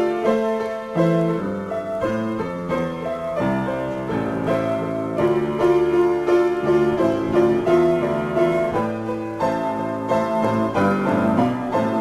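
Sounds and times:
solo piano: 0:00.0 - 0:12.0.

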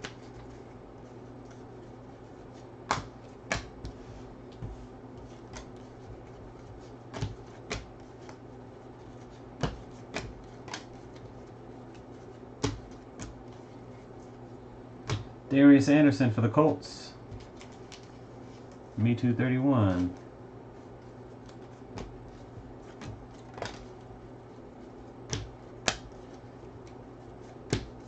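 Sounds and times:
faint low hum: 0:00.0 - 0:28.0
cards flipping with clicks: 0:09.3 - 0:13.7, 0:17.3 - 0:18.8, 0:22.9 - 0:24.0, 0:25.3 - 0:27.0.

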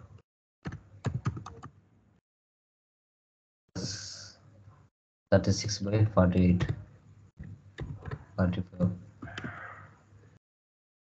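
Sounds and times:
computer keyboard typing: 0:00.7 - 0:01.7, 0:06.6 - 0:06.8, 0:07.4 - 0:08.3, 0:09.2 - 0:09.6.

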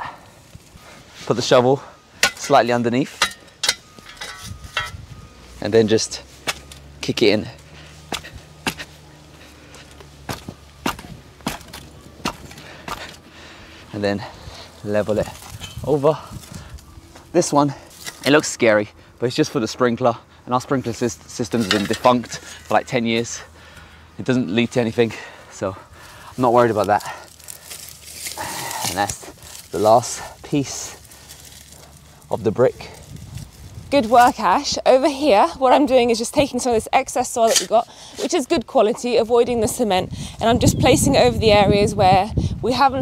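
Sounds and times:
spade scraping through soil: 0:02.2 - 0:05.6, 0:17.9 - 0:18.6, 0:21.3 - 0:23.0, 0:37.3 - 0:38.4
hands scraping in loose soil: 0:26.1 - 0:34.5.

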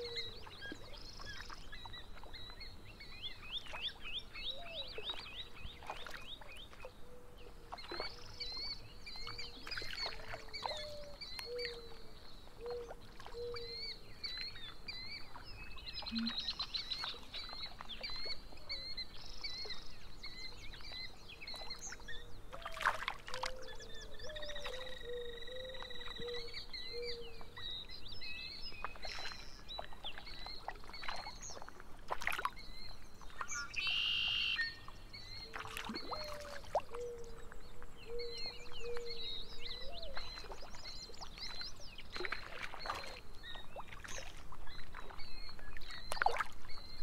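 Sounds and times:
birds chirping and trilling: 0:00.0 - 0:22.7, 0:23.4 - 0:31.7, 0:32.5 - 0:47.0
bird short low notes: 0:16.0 - 0:16.6.

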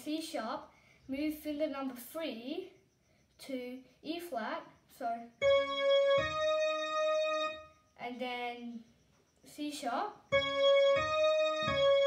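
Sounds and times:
digital piano notes: 0:05.4 - 0:07.7, 0:10.3 - 0:12.0.

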